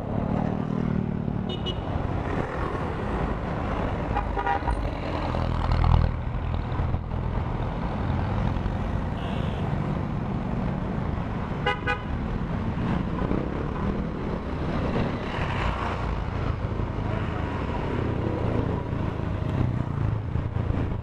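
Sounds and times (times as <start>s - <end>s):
vehicle horn tooting: 9.2s - 9.6s.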